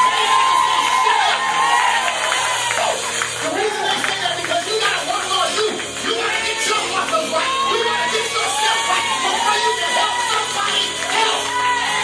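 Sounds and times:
congregation cheering and shouting: 0.0 - 12.0
keyboard music: 0.0 - 12.0.

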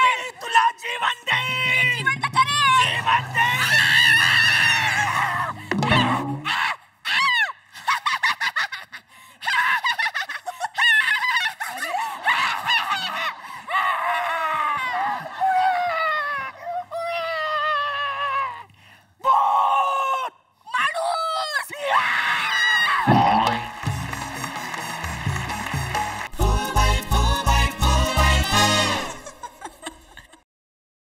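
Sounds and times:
high-pitched shrieks and wails: 2.3 - 7.4.

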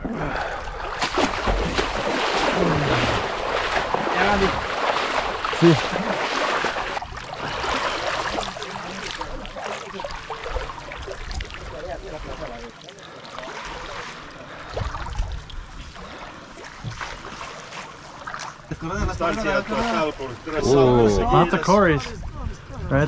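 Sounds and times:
river water sloshing and splashing: 0.0 - 20.6.

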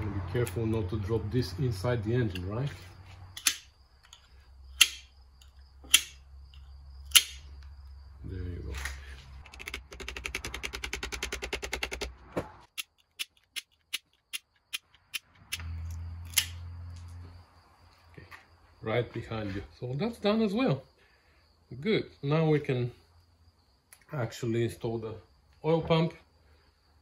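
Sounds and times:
sharp cutter snips: 4.8 - 5.1, 5.8 - 6.2, 7.1 - 7.5, 16.3 - 16.6
rapid clicking: 9.4 - 12.2.

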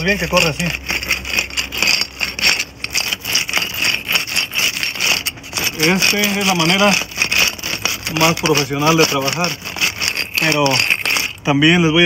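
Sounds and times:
raker scraping brick mortar joints: 0.0 - 12.0
small wheels rolling on brick: 0.0 - 12.0.

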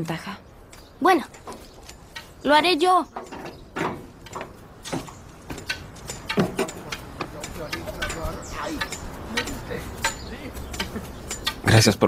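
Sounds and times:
light clicks and knocks: 3.1 - 11.6.

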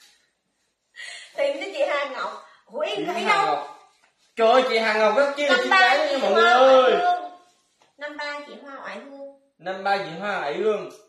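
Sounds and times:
woman speaking: 1.3 - 3.8, 5.5 - 7.4, 8.0 - 9.4.

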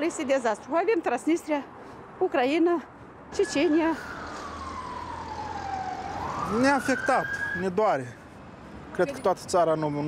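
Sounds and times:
emergency siren wailing: 3.3 - 7.8.

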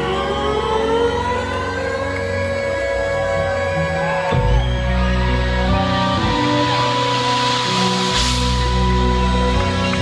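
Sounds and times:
low sustained synth notes: 0.0 - 10.0
synthesizer chord gliding upward: 0.0 - 10.0.

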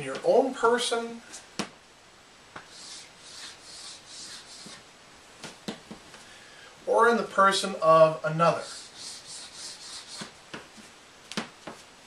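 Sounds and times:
chalk scraping on blackboard: 2.6 - 4.8, 8.4 - 10.4.

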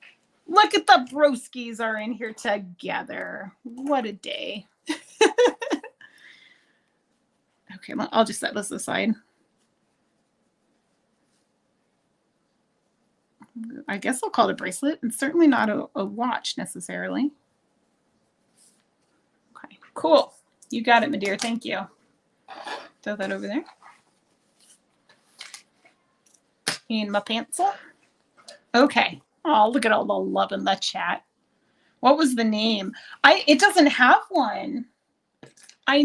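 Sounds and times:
woman speaking: 0.5 - 6.0, 7.7 - 9.2, 13.4 - 17.3, 19.9 - 21.9, 22.5 - 23.9, 26.8 - 27.9, 28.5 - 31.2, 32.0 - 34.9
faint rustle: 18.2 - 20.7, 21.8 - 26.5.

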